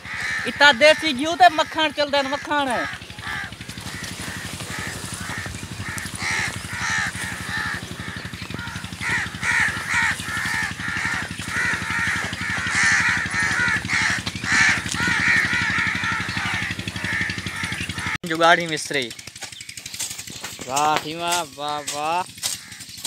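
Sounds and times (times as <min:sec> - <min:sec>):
crows cawing: 0:00.0 - 0:18.2, 0:18.8 - 0:23.0
low mechanical drone: 0:00.0 - 0:23.0.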